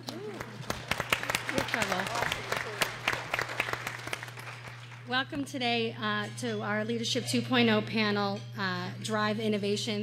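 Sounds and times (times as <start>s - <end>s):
audience applauding: 0.0s - 5.1s
steady low hum: 0.0s - 10.0s.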